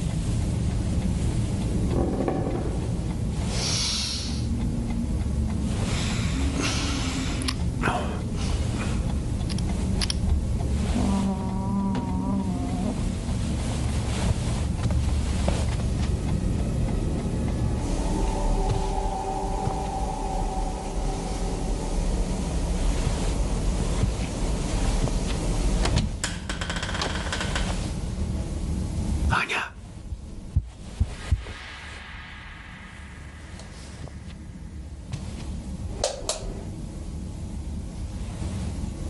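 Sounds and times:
low rumbling drone: 0.0 - 39.0
wavering eerie tones: 16.1 - 24.7
held tone: 17.2 - 22.9
sharp high sting: 17.4 - 22.8, 31.4 - 35.0.

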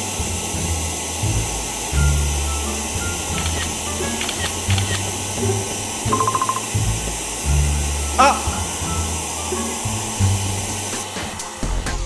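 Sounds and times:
hair dryer blowing: 0.0 - 11.6
background music: 0.0 - 12.0.

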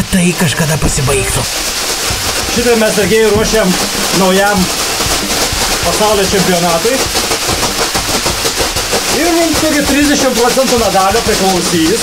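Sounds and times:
leafy whisks slapping on skin: 1.0 - 12.0.

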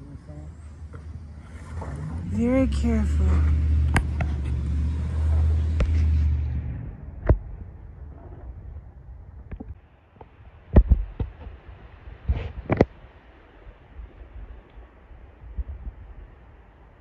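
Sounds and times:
wind rumbling on microphone: 0.0 - 17.0.

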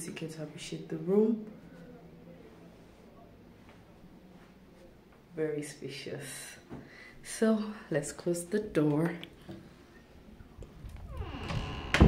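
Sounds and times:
door swinging closed: 11.0 - 12.0.

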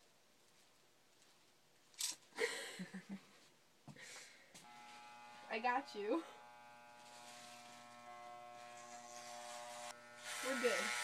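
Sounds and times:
electric hair clippers buzzing: 4.6 - 11.0.

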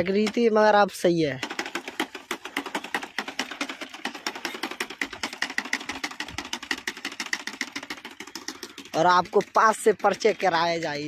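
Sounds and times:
planter wheel rolling over soil: 0.0 - 11.0
seed planter rapid clicking: 0.0 - 11.0.

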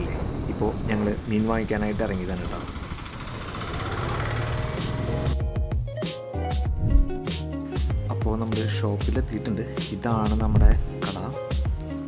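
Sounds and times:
wind and road noise: 0.0 - 5.4, 6.7 - 7.2
motorcycle engine running: 2.3 - 5.6.

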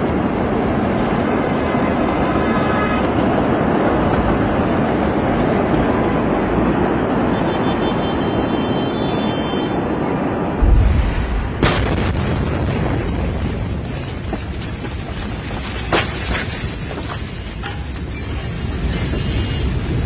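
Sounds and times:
steady rushing roar: 0.0 - 20.0
sharp crack of blast wave: 10.6 - 13.4
distant explosion boom: 10.6 - 13.9.

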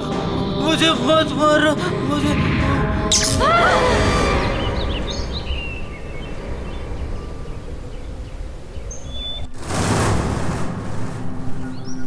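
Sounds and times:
birds chirping: 3.1 - 9.6, 11.3 - 12.0.

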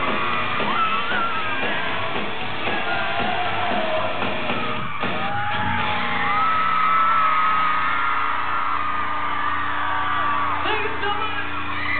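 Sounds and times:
crowd screaming: 0.0 - 11.9
long high-pitched scream: 0.6 - 1.7, 4.9 - 11.9.

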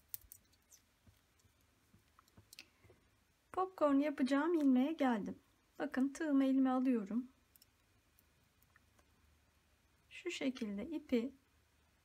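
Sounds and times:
knitting needles clicking: 0.0 - 2.9, 7.4 - 9.1.

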